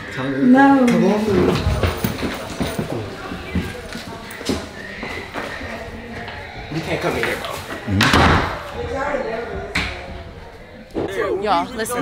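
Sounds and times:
voices: 0.0s - 12.0s
footsteps on wooden floor: 1.2s - 6.5s
loud knocks: 7.9s - 8.7s.

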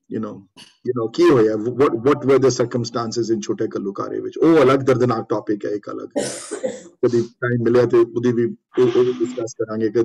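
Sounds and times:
man speaking: 0.0s - 6.3s, 6.9s - 10.0s.

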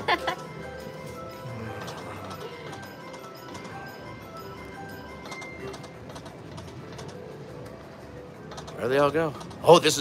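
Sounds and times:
slot machine electronic tones: 0.0s - 7.6s
casino background noise: 0.0s - 10.0s.

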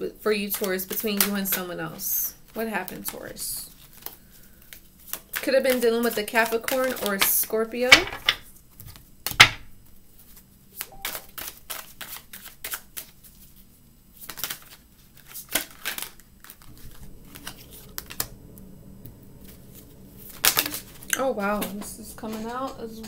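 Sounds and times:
cards being shuffled: 0.6s - 1.7s, 2.5s - 7.5s, 10.1s - 18.4s.

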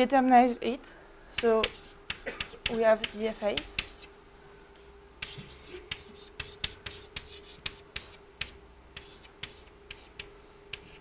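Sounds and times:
chalk scratching strokes: 1.4s - 4.1s, 5.2s - 11.0s
chalk tapping on blackboard: 1.4s - 4.1s, 5.2s - 11.0s.

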